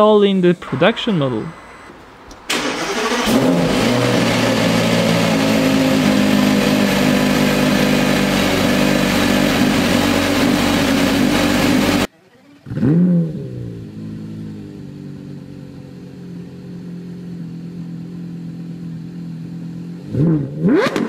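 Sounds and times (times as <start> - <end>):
car engine idling: 0.6 - 12.6, 13.8 - 20.1
car engine revving: 2.5 - 21.0.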